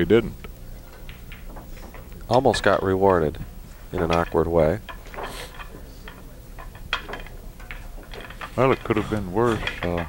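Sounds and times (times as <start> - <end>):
low room hum: 0.0 - 10.0
faint clicks and knocks: 0.4 - 10.0.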